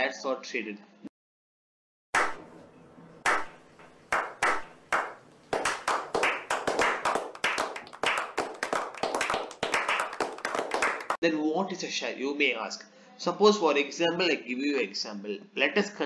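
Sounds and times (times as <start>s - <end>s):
small group clapping: 2.2s - 2.5s, 3.2s - 11.2s.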